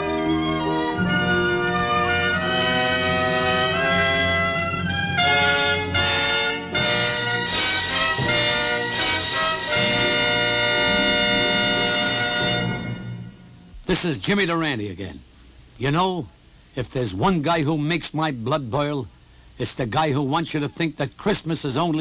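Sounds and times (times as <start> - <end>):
orchestral music with brass: 0.0 - 13.7.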